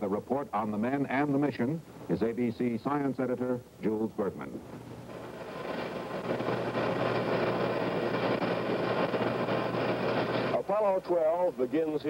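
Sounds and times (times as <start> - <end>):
steady mechanical rumbling: 4.9 - 10.6.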